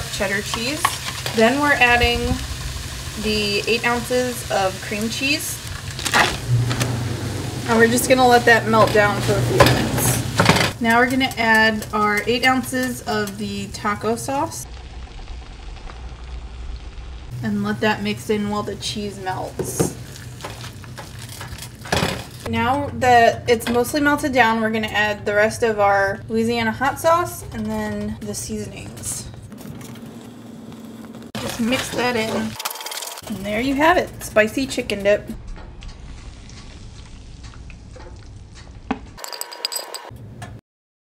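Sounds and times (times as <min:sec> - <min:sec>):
cheese sizzling: 0:00.0 - 0:22.5, 0:30.1 - 0:34.0, 0:35.8 - 0:38.9
pan knocking: 0:06.3 - 0:12.3.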